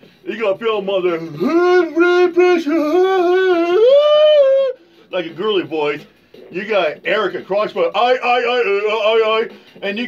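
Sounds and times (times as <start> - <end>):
man singing high falsetto note: 1.1 - 4.8.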